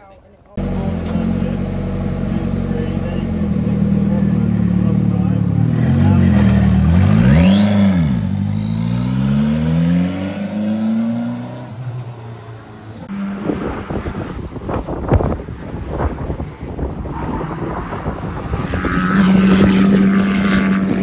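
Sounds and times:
race car engine revving: 0.6 - 14.4, 16.7 - 21.0.

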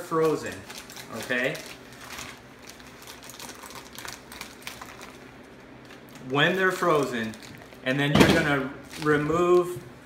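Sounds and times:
plastic crinkling: 0.0 - 9.9.

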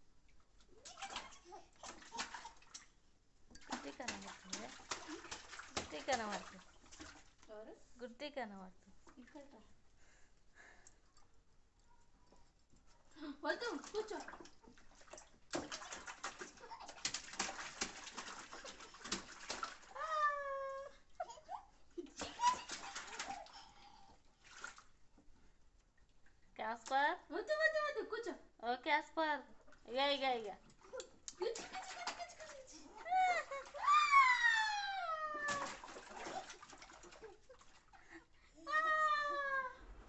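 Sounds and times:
water splashing in plastic tub: 0.4 - 7.6, 13.4 - 21.4, 22.0 - 25.4, 29.5 - 40.0
child crying: 19.9 - 21.5, 33.0 - 35.8, 38.6 - 39.8.

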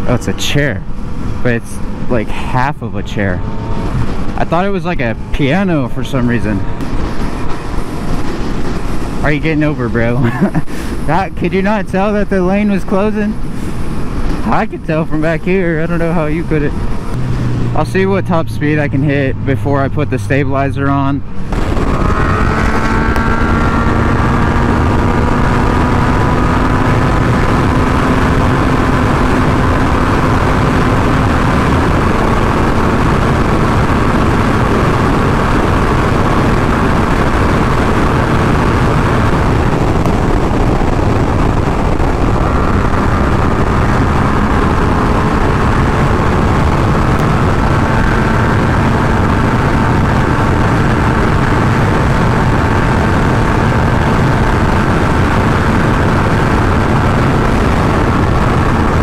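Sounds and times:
heavy wind rush over microphone: 0.0 - 19.9, 20.9 - 59.0
motorcycle engine accelerating: 0.0 - 20.4, 21.4 - 59.0.

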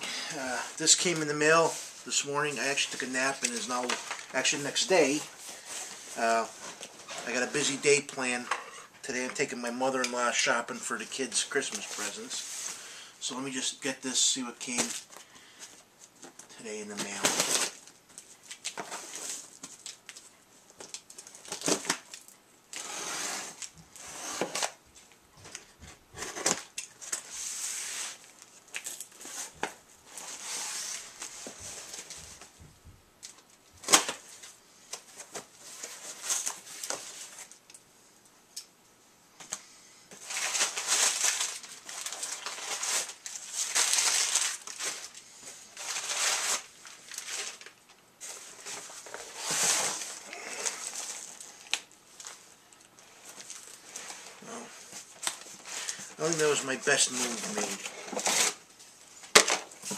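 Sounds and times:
cardboard ripping and rustling: 17.0 - 17.8, 40.2 - 52.4, 53.2 - 59.9.

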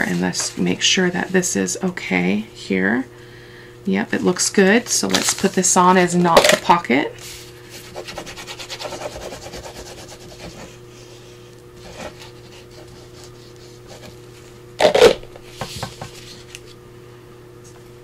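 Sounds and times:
paper rustling: 5.1 - 5.7.

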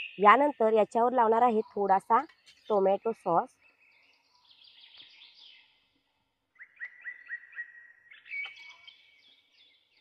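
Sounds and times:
birds chirping faintly: 0.0 - 10.0.

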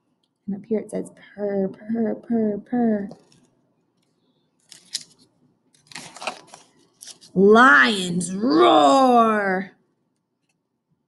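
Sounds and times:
paper page rustling: 4.6 - 7.4.

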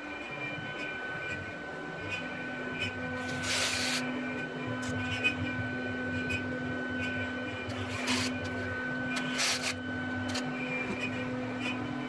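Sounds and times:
drill motor whirring: 0.0 - 12.0
steady background hum: 0.0 - 12.0.

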